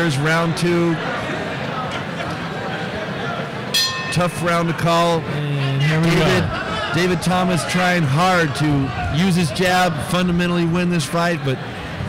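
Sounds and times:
murmur of crowd talking: 0.0s - 12.0s
boxing bell ring: 3.7s - 5.0s.

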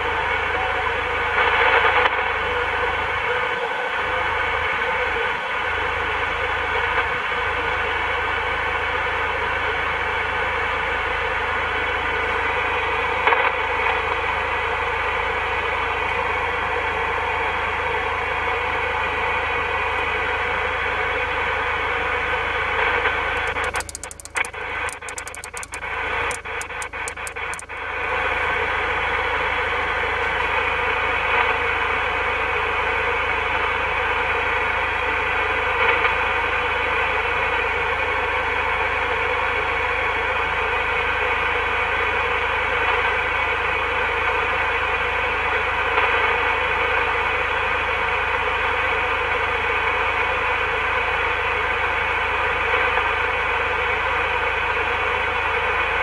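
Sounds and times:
channel selector clicks: 23.4s - 27.7s.

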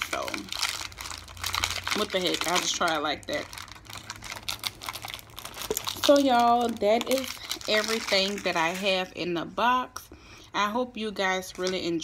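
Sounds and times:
snack packaging crinkling: 0.0s - 9.1s
person speaking: 5.6s - 10.0s.

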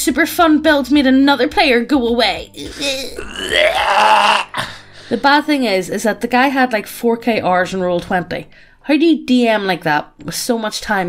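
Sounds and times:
person's drawn-out vocal cry: 2.6s - 4.7s.

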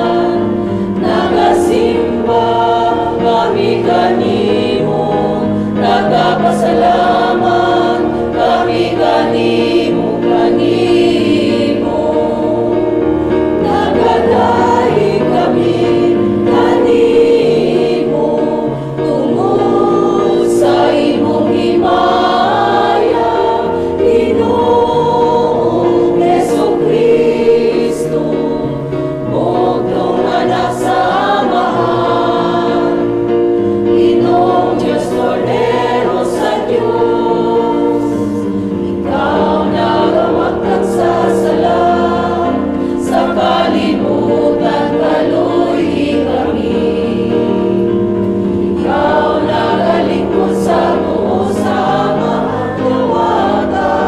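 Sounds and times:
church choir singing hymn: 0.0s - 54.0s.

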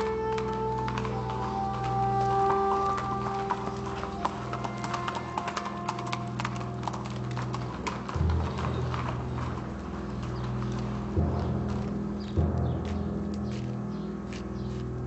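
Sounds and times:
hooves clip-clopping on hard ground: 0.0s - 15.0s
low background music: 0.0s - 15.0s.

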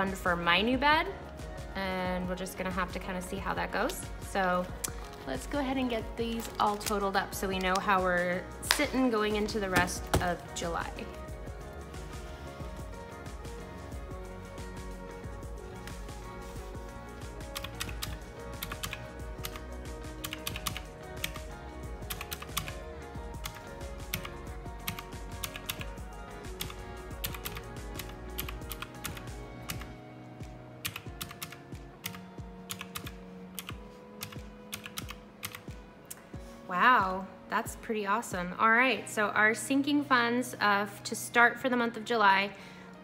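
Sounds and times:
soft background music: 0.0s - 43.0s.

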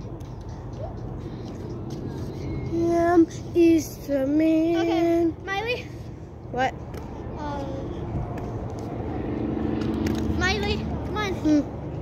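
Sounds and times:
distant engine rumble: 0.0s - 12.0s.

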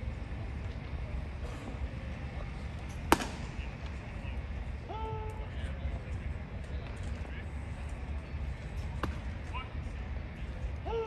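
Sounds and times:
low outdoor rumble: 0.0s - 11.0s
baseball hitting glove crack: 3.0s - 4.0s, 9.0s - 9.3s.

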